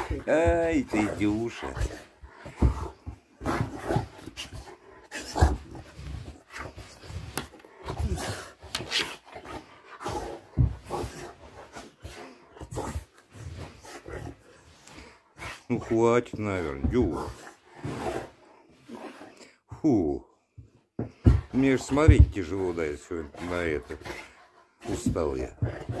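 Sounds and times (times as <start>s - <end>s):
dog breathing: 0.0s - 26.0s.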